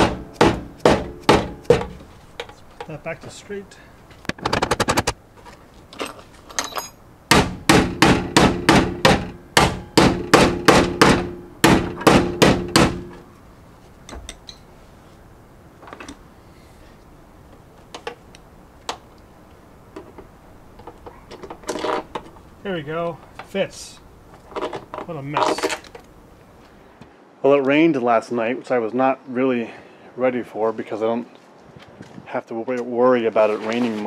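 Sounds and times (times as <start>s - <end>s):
hammer striking sheet metal: 0.0s - 2.0s, 7.3s - 13.2s.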